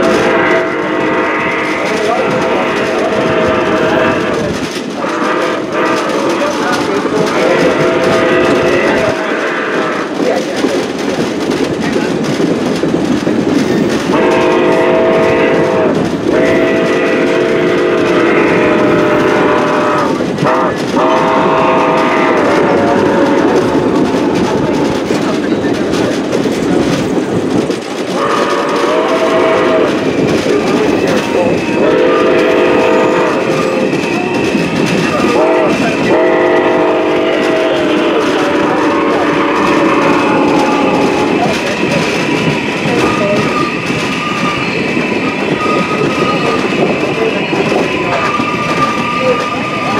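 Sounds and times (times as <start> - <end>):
train horn blasts: 0.0 - 10.1, 14.1 - 25.1, 28.1 - 49.9
train cars clacking on rails: 0.0 - 49.9.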